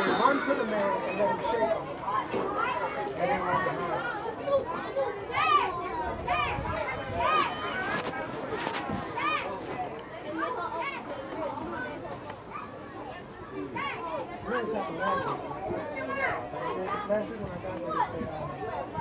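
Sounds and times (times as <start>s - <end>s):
children and adults talking: 0.0s - 19.0s.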